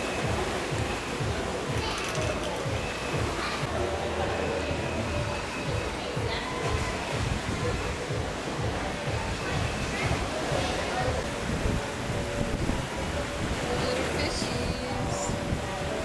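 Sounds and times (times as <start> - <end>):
faint voices: 0.0 - 16.0
sea water washing: 0.0 - 16.0
wind buffeting microphone: 6.2 - 16.0.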